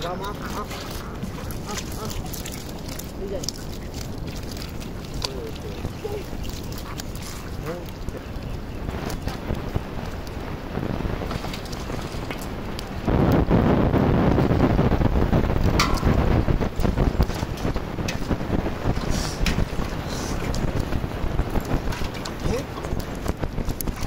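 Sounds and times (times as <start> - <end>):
wind buffeting microphone: 0.0 - 24.0
fish flapping in a net: 0.5 - 7.9.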